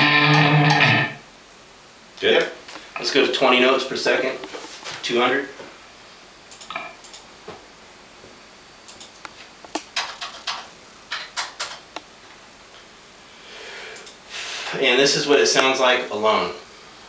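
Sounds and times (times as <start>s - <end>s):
computer keyboard and mouse clicks: 6.5s - 7.2s, 8.9s - 12.1s.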